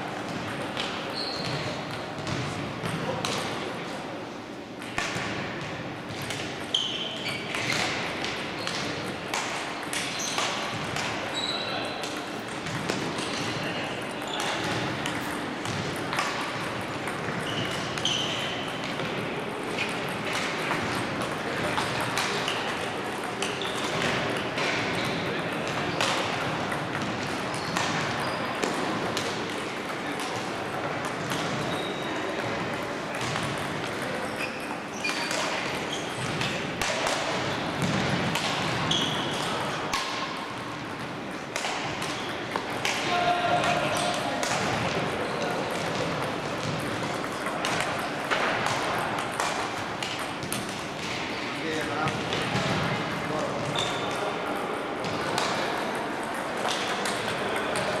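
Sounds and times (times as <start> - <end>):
table tennis balls clicking: 6.2 - 51.1.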